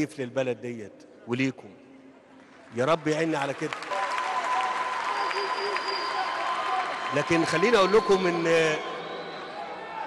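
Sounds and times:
audience applauding: 2.6 - 10.0.

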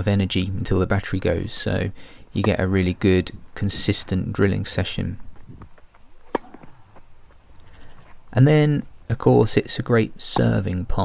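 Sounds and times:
low outdoor background: 0.0 - 11.0
tennis racket hitting ball: 6.2 - 7.1, 10.2 - 10.6.

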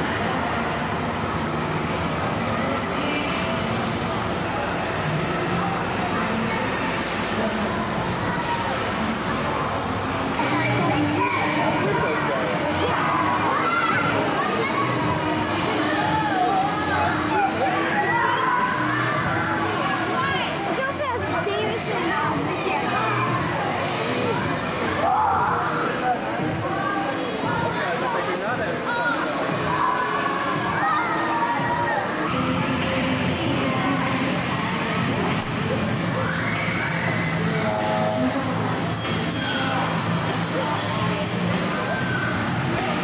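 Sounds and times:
crowd hubbub: 0.0 - 43.0
children shouting: 10.4 - 15.1, 29.0 - 32.3, 36.1 - 38.4
children shouting and cheering: 10.4 - 15.1, 15.8 - 20.2, 29.7 - 32.3.

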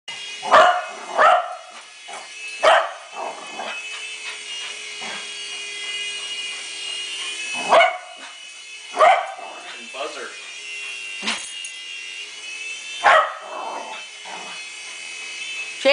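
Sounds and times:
toy helicopter motor whine: 0.1 - 15.9
dog barking sharply: 7.7 - 8.1, 9.0 - 9.4.

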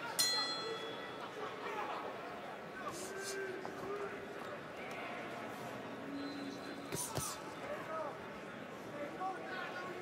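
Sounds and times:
crowd murmur: 0.0 - 10.0
boxing ring bell ringing: 0.1 - 1.4.

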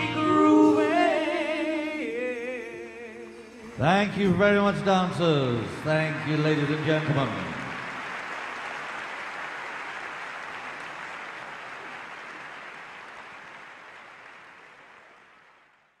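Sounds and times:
audience applauding: 3.7 - 16.0.

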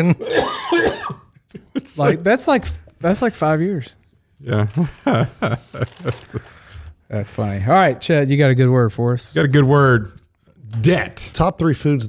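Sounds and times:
man coughing and laughing: 0.0 - 2.5.

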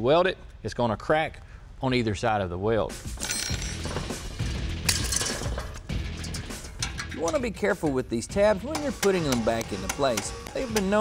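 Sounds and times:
background music: 2.1 - 11.0
wire springs clinking and rattling: 3.2 - 8.0.

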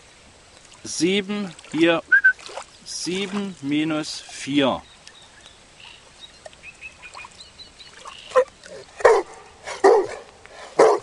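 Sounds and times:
dog barking: 8.4 - 11.0.

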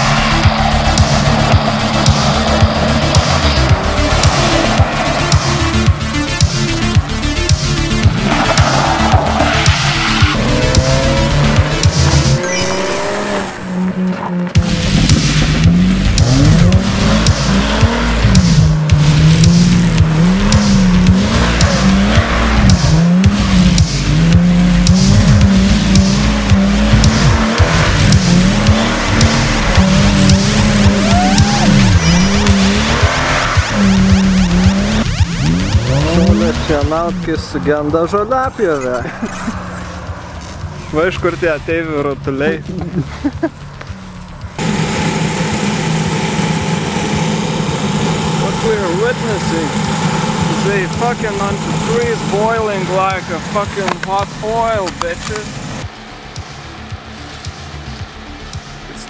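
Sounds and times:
music with a steady beat: 0.0 - 13.5, 14.6 - 38.4, 53.2 - 59.0
car engine revving: 0.0 - 59.0
tyres skidding: 0.0 - 59.0.

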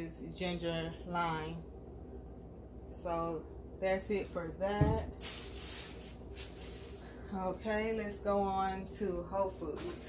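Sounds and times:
grocery bags rustling: 5.1 - 7.7, 9.5 - 10.0.

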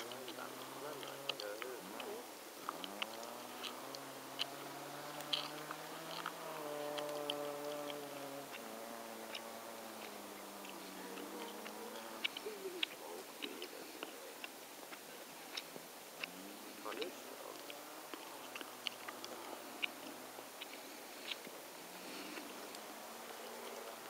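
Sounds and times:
distant car engine revving: 0.0 - 24.0.

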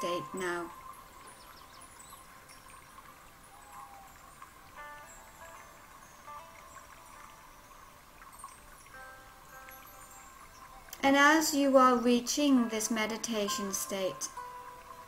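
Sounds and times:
soft chime-like music: 0.0 - 15.0.

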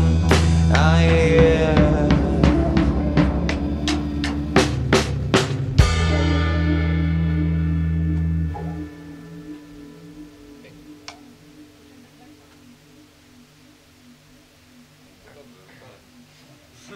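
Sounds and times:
bass guitar: 0.0 - 11.4
electric guitar chord ringing: 0.0 - 12.4.

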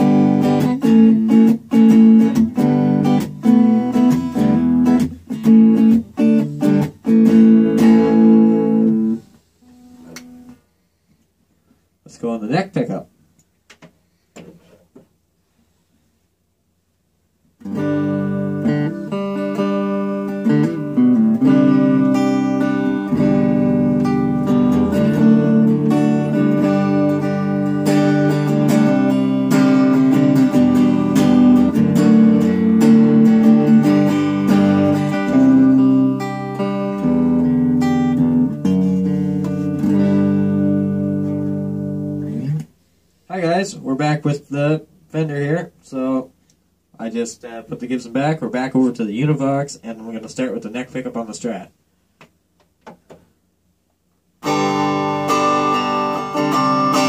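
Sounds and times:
electric guitar notes and chords: 0.0 - 9.2, 17.6 - 42.7, 54.4 - 57.0.

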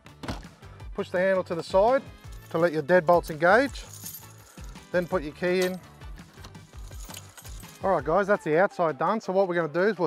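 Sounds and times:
soft background music: 0.0 - 10.0
keys jangling: 3.2 - 7.9.

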